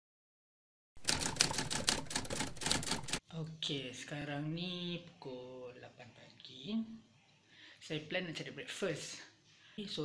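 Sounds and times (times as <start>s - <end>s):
typewriter keystroke clicks: 1.0s - 3.2s.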